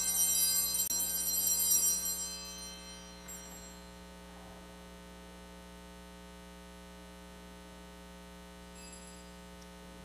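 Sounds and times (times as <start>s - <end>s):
altar bells ringing: 0.0s - 4.5s, 8.8s - 9.6s
steady electrical hum: 0.0s - 10.0s.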